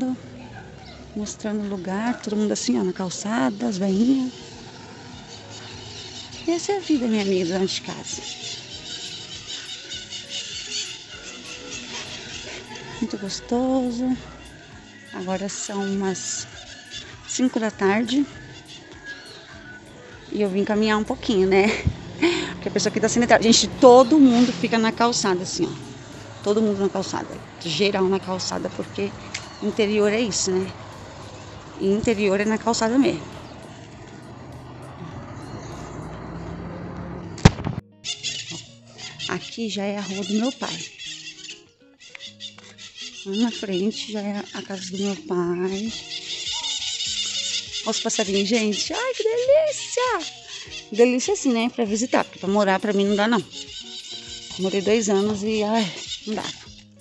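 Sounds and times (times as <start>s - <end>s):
small birds chirping: 0.0s - 36.7s, 38.0s - 57.0s
steady low street hum: 0.0s - 41.0s
background music: 0.0s - 57.0s
sharp loud click: 37.4s - 37.8s.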